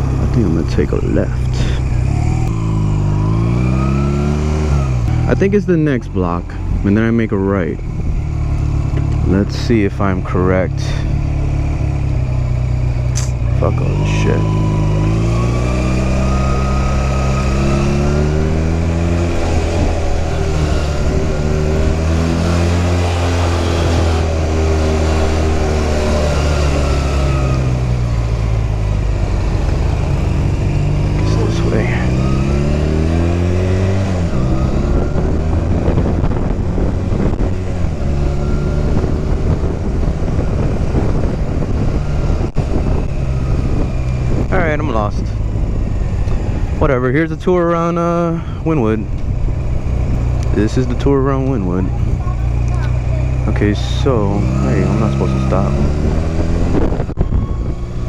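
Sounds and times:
motorcycle engine revving: 0.0s - 58.0s
wind noise on microphone: 32.8s - 58.0s.

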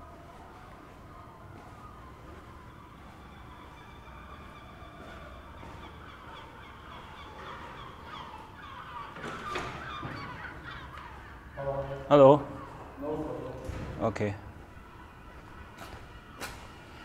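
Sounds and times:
birds chattering: 1.1s - 17.0s.

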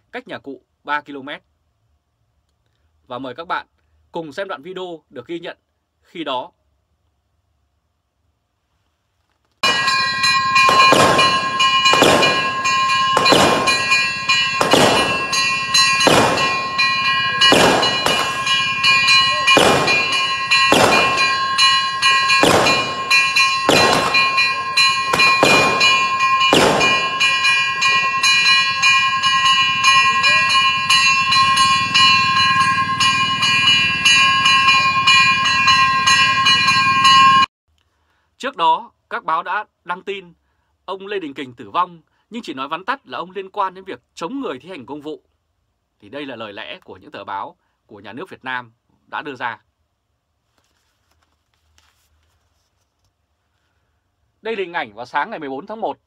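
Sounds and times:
metal bell struck: 9.6s - 37.5s.

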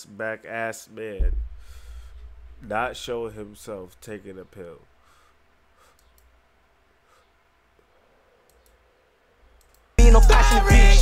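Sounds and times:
faint mouse clicks: 5.9s - 6.3s, 7.8s - 8.8s, 9.5s - 10.0s.

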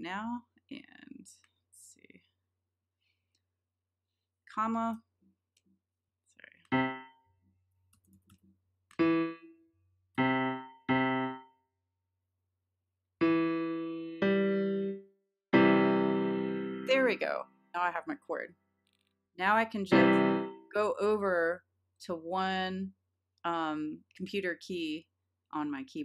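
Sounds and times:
piano notes and chord: 6.7s - 7.2s, 9.0s - 9.6s, 10.2s - 11.5s, 13.2s - 17.1s, 19.9s - 20.7s.

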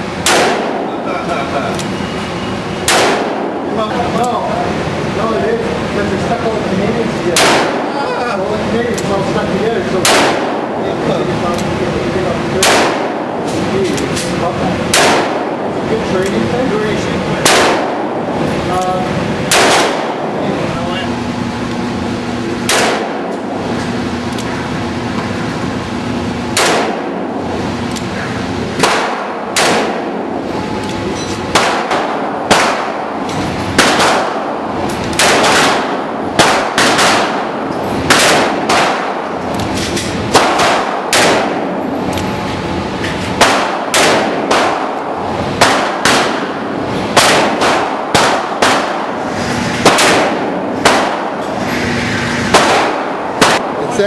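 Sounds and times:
gunshots echoing indoors: 0.0s - 1.1s, 2.6s - 4.3s, 7.2s - 8.1s, 9.8s - 42.4s, 43.3s - 54.0s
steady low hum: 0.0s - 54.0s.

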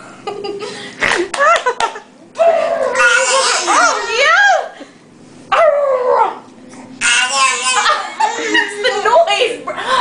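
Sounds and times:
laughter: 0.1s - 2.1s, 7.8s - 9.0s.

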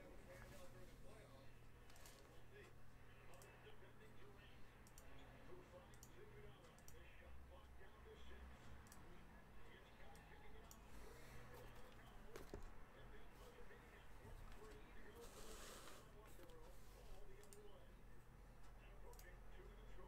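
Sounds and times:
low room hum: 0.0s - 20.0s
faint scattered clicks: 1.8s - 3.6s, 4.8s - 5.2s, 5.9s - 7.0s, 8.6s - 9.1s, 17.3s - 17.7s, 18.6s - 19.8s.

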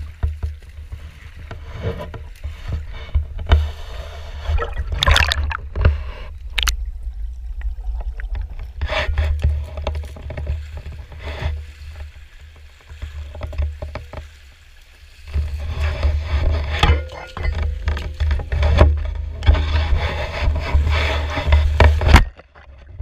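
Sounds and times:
water splashing and sloshing: 0.0s - 23.0s
low rumble: 3.3s - 10.2s.

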